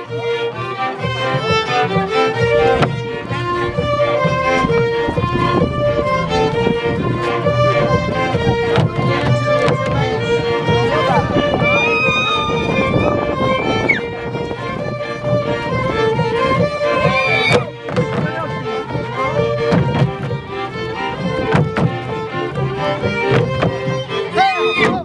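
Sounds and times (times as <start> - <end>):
fiddle and double bass band: 0.0 - 25.0
footfalls on wooden boards: 17.0 - 18.4, 19.6 - 20.4, 21.2 - 24.0.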